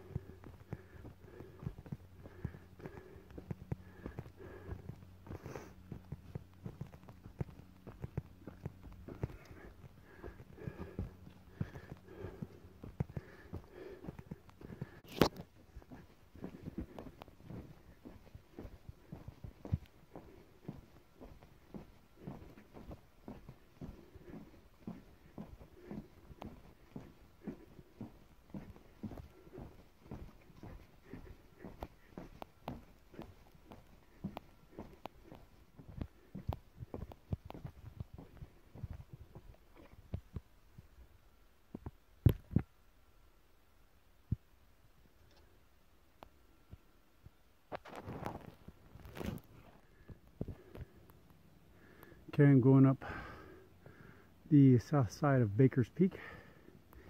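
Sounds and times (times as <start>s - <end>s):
footsteps on forest trail: 0.0s - 40.4s, 47.7s - 52.1s, 52.7s - 54.2s, 56.0s - 57.0s
footsteps on wooden boardwalk: 0.0s - 40.8s.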